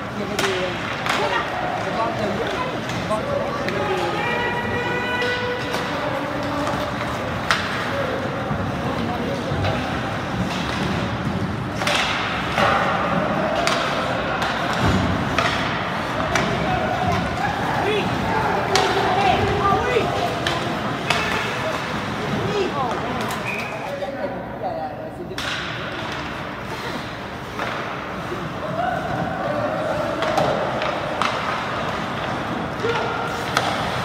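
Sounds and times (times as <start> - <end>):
hockey sticks and puck clacking: 0.0 - 24.0, 25.3 - 34.0
spectators chattering and calling out: 0.0 - 34.0.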